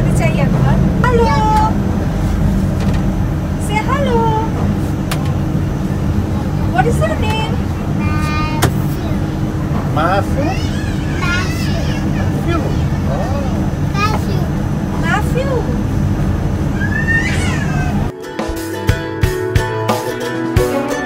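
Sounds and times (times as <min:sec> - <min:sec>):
vehicle engine idling: 0:00.0 - 0:18.1
small child calling out: 0:10.5 - 0:13.0, 0:16.8 - 0:18.0.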